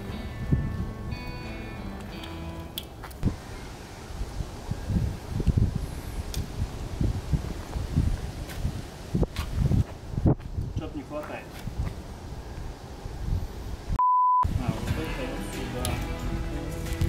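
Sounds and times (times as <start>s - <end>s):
wind rumble on microphone: 0.0s - 1.5s, 3.2s - 11.0s, 11.6s - 15.0s
background music: 0.0s - 2.8s, 14.5s - 17.0s.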